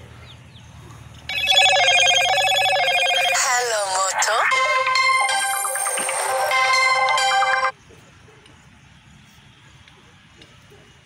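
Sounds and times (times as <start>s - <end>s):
electronic ringtone: 1.3s - 7.7s.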